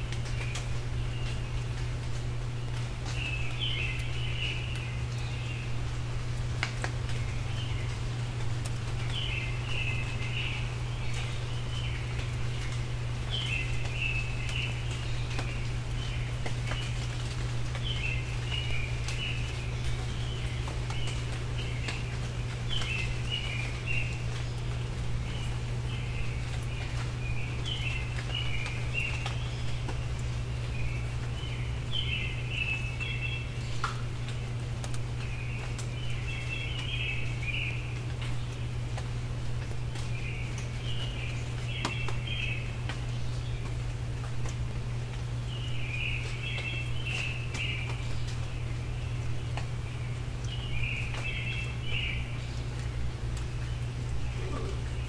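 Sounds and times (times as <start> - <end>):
songbirds singing: 0.0 - 55.0
steady low hum: 0.0 - 55.0
songbird warbling: 53.8 - 55.0.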